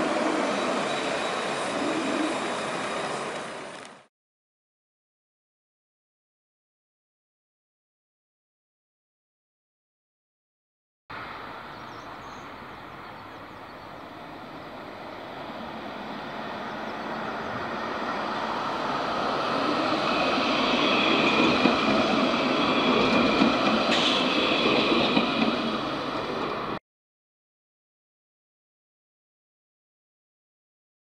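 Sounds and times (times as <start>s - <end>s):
tram running on rails: 0.0s - 4.1s, 11.1s - 26.8s.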